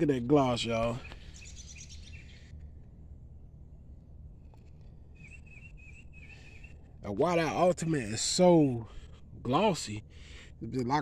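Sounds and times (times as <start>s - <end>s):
low steady rumble: 0.0s - 11.0s
bird wavering call: 5.2s - 6.9s.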